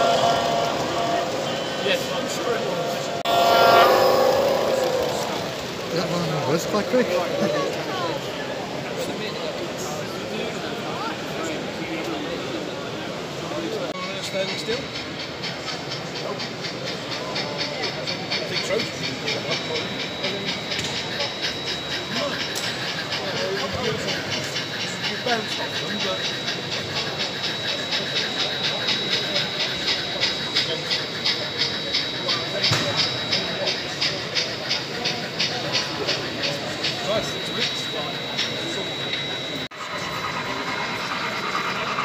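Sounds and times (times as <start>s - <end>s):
background chatter of voices: 0.0s - 42.0s
model steam locomotive chuffing: 0.0s - 42.0s
toy train running on track: 0.0s - 42.0s.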